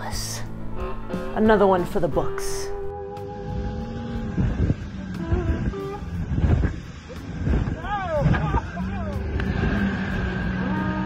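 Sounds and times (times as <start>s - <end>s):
outboard motor running: 2.9s - 11.0s
wind buffeting microphone: 3.5s - 9.8s.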